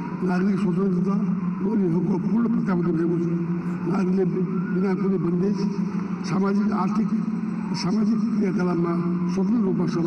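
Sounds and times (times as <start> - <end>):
man speaking into a microphone: 0.1 - 10.0.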